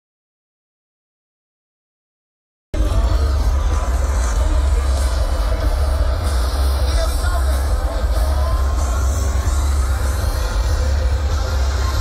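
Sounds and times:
live concert music with heavy bass: 2.8s - 12.0s.

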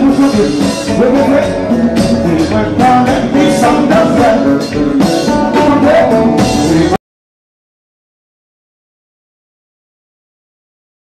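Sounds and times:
drums and percussion: 0.0s - 7.0s
lead vocal singing: 0.0s - 7.0s
live band through pa system: 0.0s - 7.0s.

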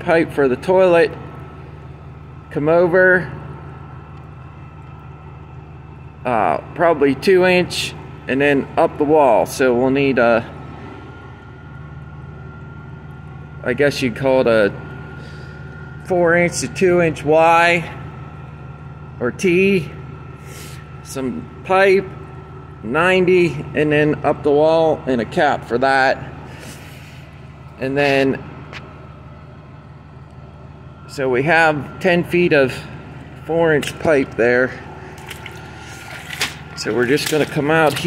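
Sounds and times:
generator engine running: 0.0s - 38.0s.

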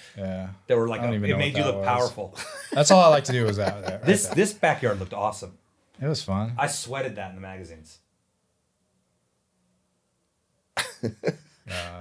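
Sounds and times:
man saying uh: 0.2s - 5.5s, 11.7s - 12.0s.

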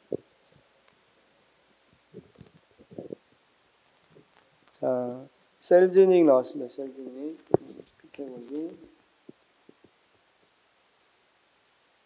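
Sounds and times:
faint low thumps: 7.3s - 10.0s.

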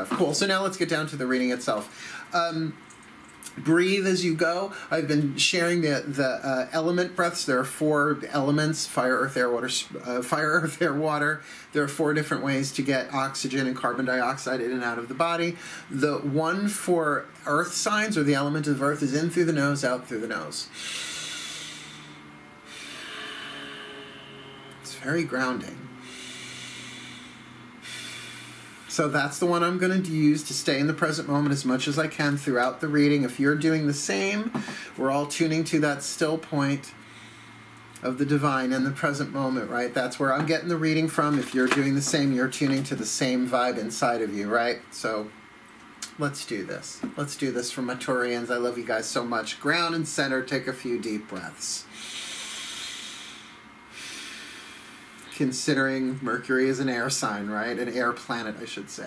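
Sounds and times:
faint low hum: 0.0s - 59.0s
person breathing through the nose: 1.9s - 2.3s, 15.6s - 15.9s, 20.7s - 24.6s, 26.0s - 29.0s, 37.0s - 37.7s, 51.9s - 55.3s.

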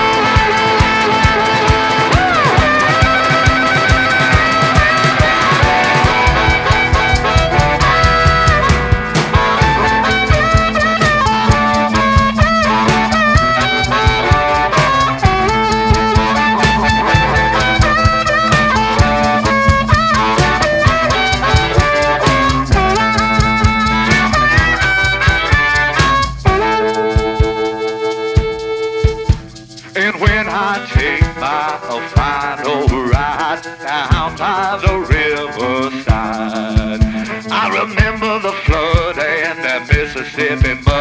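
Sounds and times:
amplified harmonica solo: 0.0s - 41.0s
drums: 0.0s - 41.0s
electric guitar: 0.0s - 41.0s.

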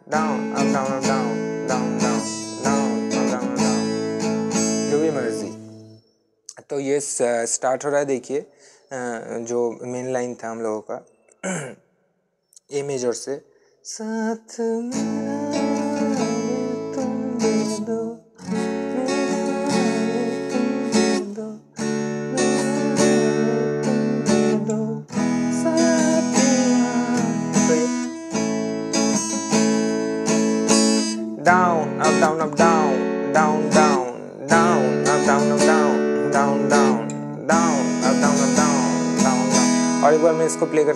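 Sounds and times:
man singing: 0.0s - 4.2s, 4.8s - 5.6s, 13.9s - 29.9s, 30.7s - 40.9s
acoustic guitar strumming: 0.0s - 6.1s, 14.9s - 40.9s.

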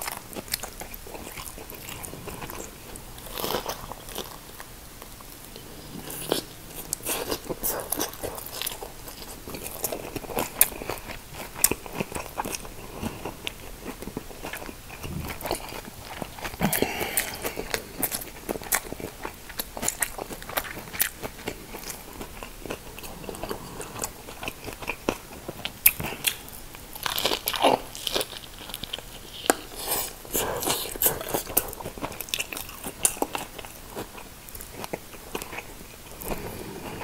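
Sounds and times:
biting and chewing crunches: 0.0s - 37.0s.

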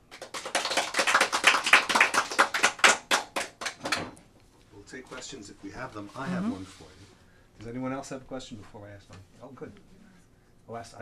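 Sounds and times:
audience applauding: 0.0s - 4.0s.

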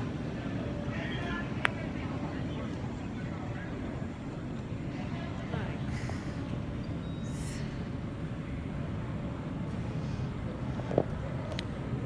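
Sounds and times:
low crowd rumble: 0.0s - 12.0s.

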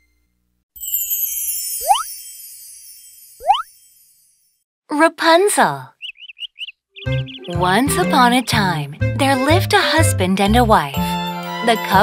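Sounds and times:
sparkly chime jingle: 0.8s - 4.6s
quick rising bloop: 1.8s - 2.1s.

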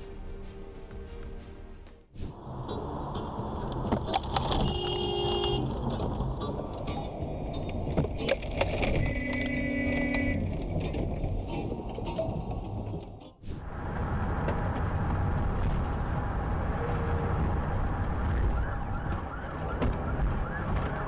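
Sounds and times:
road and wind noise in car: 2.2s - 21.0s.

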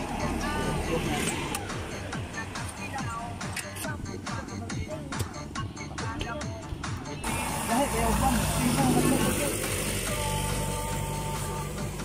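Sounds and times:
vehicle engine droning: 0.0s - 5.9s, 7.0s - 12.0s
people talking: 7.6s - 10.4s.

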